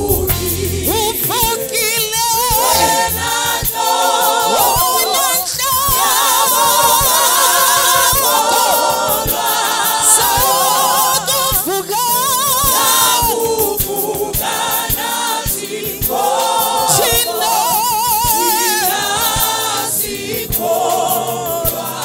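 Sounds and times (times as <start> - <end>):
woman singing lead with vibrato: 0.0 - 14.4, 16.8 - 21.7
women backing singers: 0.0 - 22.0.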